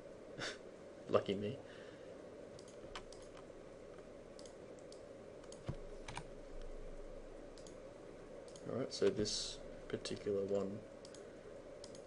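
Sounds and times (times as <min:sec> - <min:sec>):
faint low hum: 0:00.0 - 0:12.0
mouse and keyboard clicks: 0:02.6 - 0:03.5.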